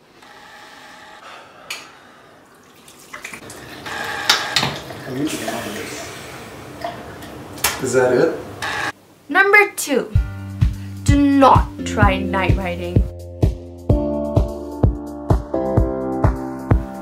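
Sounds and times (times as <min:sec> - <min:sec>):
water splashing: 0:02.4 - 0:07.6
tap water running into sink: 0:02.5 - 0:07.8.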